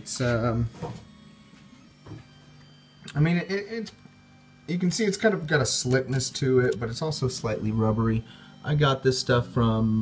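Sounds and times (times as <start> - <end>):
three d printer motors whining: 0.0 - 10.0.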